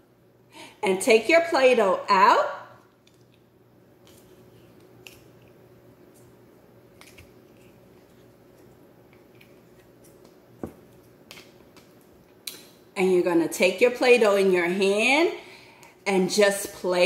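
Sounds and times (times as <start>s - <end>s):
steady low hum: 0.0s - 17.0s.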